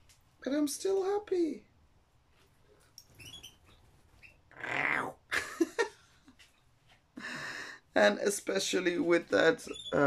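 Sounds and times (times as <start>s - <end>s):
caged birds chirping: 3.0s - 5.1s, 9.6s - 10.0s
woman laughing: 5.3s - 6.0s.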